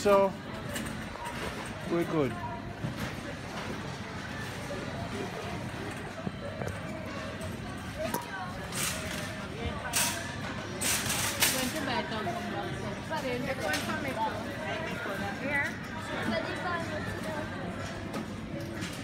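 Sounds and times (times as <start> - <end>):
indistinct shoppers' voices: 0.0 - 19.0.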